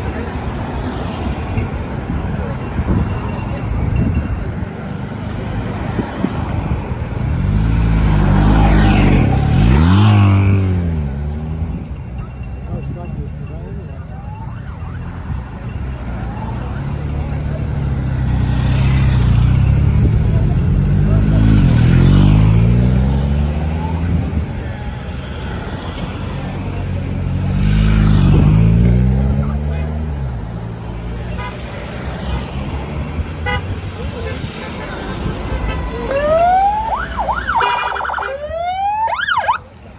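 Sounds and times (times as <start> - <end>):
vehicles driving past: 0.0 - 39.9.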